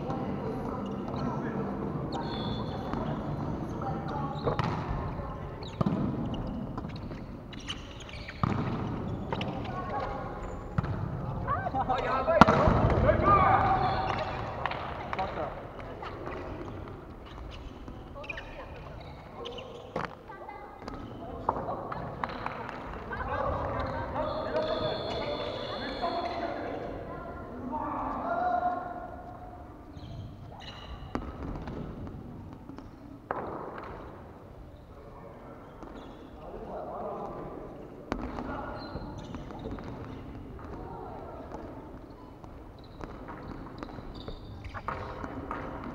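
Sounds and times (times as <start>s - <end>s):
ball hitting wooden court: 4.5s - 5.0s, 8.3s - 10.2s, 12.4s - 13.1s, 31.1s - 34.1s
players calling out: 11.4s - 15.4s, 23.1s - 26.9s.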